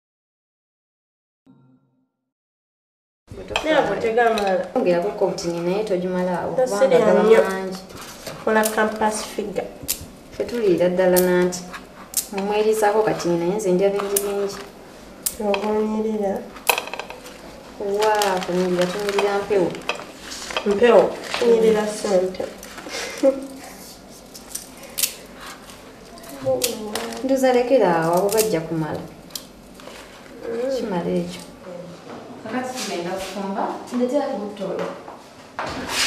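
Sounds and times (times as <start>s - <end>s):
person speaking: 17.7s - 19.9s, 20.6s - 23.6s.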